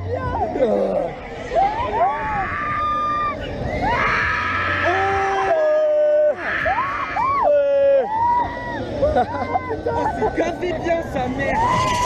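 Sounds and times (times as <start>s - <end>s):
riders screaming: 1.6s - 8.8s, 11.5s - 12.0s.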